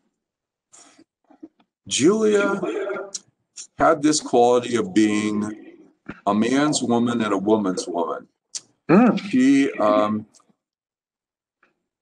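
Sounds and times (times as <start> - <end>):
man speaking: 1.8 - 10.4.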